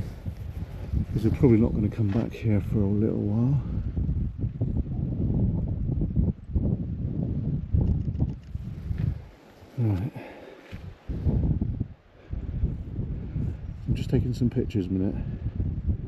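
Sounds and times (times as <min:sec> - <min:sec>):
wind rumbling on microphone: 0:00.0 - 0:16.0
camera handling noise: 0:07.8 - 0:09.1.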